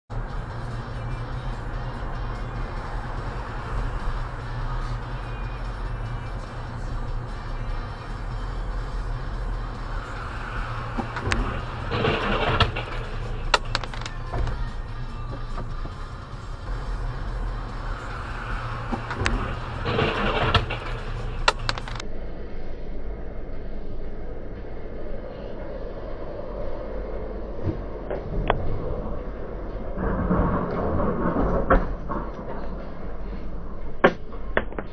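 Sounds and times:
tyres on damp asphalt: 0.1 - 22.0
car engine hum: 0.1 - 34.9
sharp clicks: 10.6 - 16.1, 18.8 - 22.0.

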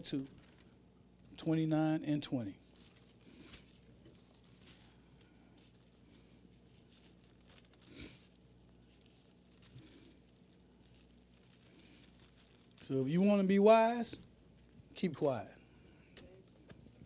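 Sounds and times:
low steady hum: 0.0 - 17.0
thin pages rustling: 0.3 - 0.7, 2.6 - 12.9.

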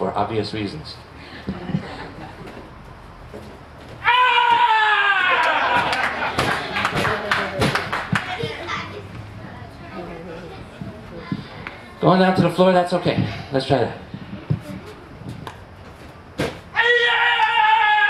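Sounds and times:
sharp thuds or claps: 5.4 - 8.5, 16.4 - 16.7.

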